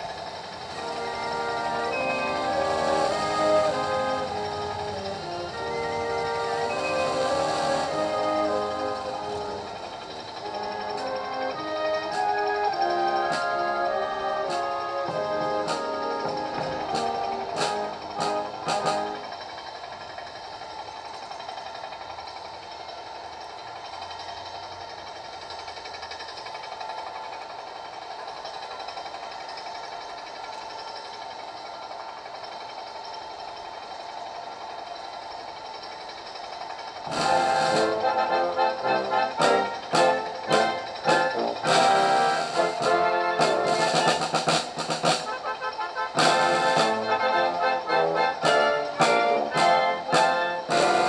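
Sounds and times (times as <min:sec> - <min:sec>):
sharp drum strokes: 0:00.0 - 0:19.9, 0:37.0 - 0:51.0
ceremonial band music: 0:00.7 - 0:19.4, 0:37.1 - 0:51.0.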